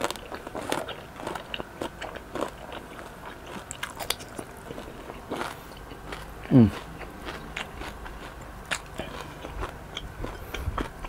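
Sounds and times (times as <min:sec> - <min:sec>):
chewing crispy pork skin: 0:00.0 - 0:11.0.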